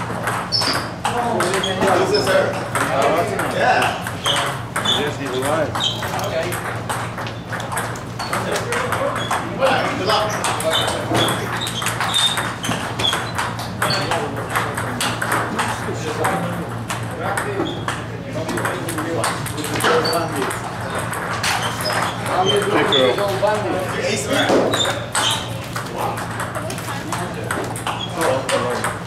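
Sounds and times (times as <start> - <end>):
table tennis balls clicking: 0.0 - 29.0.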